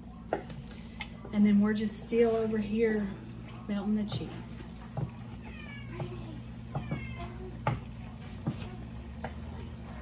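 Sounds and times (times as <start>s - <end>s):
wooden spoon knocking on pot: 4.0s - 5.2s, 5.9s - 9.6s
cat meowing: 5.4s - 7.5s.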